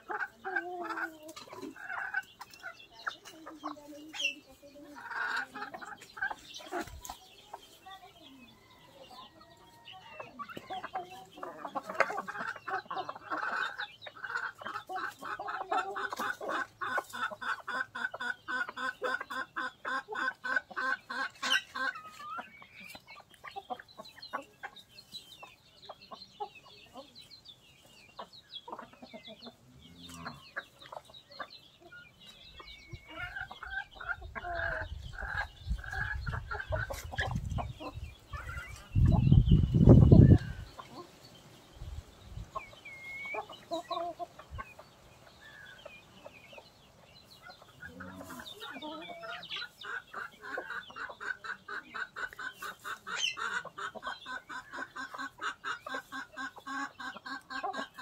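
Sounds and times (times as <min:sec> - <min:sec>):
chickens clucking: 0:00.0 - 0:58.0.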